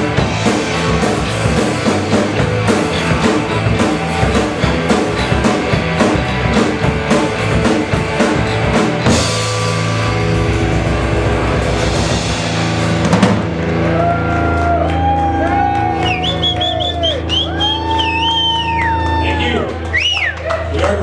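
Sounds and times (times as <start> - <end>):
sustained bending guitar notes: 0.0 - 14.8
rock band playing: 0.0 - 21.0.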